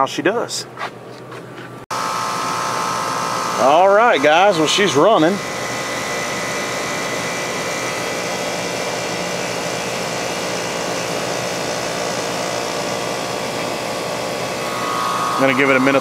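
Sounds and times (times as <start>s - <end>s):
air conditioning unit whirring: 0.0s - 16.0s.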